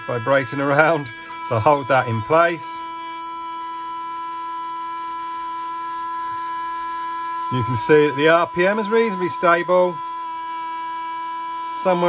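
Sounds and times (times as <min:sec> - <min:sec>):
slot car motor whining: 0:00.0 - 0:12.0.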